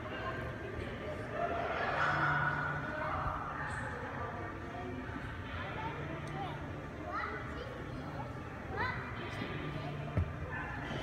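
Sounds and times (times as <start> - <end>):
busy indoor background noise: 0.0 - 11.0.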